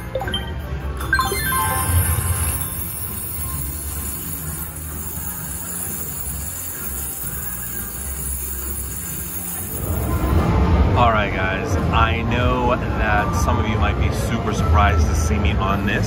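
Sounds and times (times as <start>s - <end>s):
slot machine music and effects: 0.0s - 10.5s.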